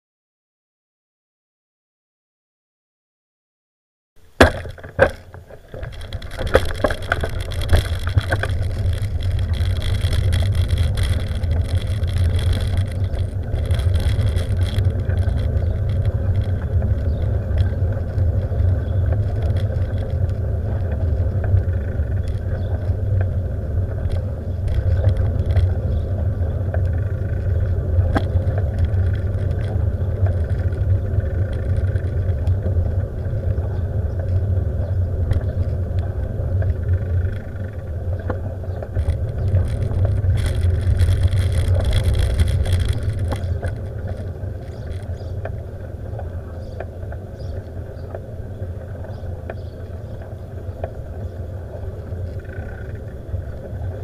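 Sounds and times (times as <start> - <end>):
wind and road noise rumble: 4.2 - 54.0
faint clicks and rattles: 4.3 - 54.0.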